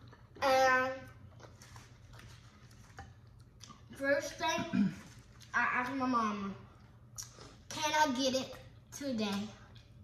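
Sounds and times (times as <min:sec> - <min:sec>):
faint chewing and mouth clicks: 0:00.0 - 0:00.4, 0:01.1 - 0:04.0, 0:05.2 - 0:06.0, 0:06.7 - 0:07.7, 0:08.5 - 0:10.0
low steady hum: 0:00.0 - 0:10.0.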